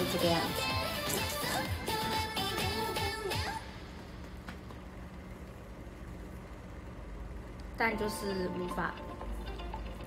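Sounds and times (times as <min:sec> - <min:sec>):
faint hum: 0:00.0 - 0:10.0
low background rumble and hiss: 0:00.0 - 0:10.0.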